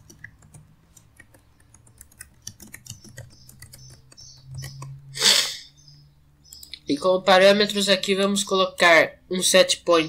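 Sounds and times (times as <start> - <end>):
typing on computer keyboard: 0.0 - 4.9.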